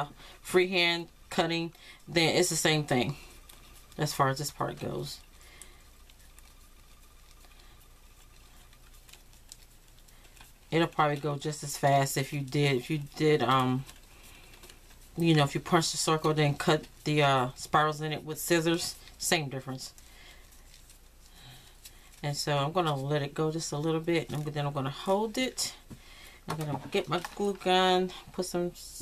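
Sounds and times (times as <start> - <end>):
paper rustling and ticking: 0.6 - 28.7.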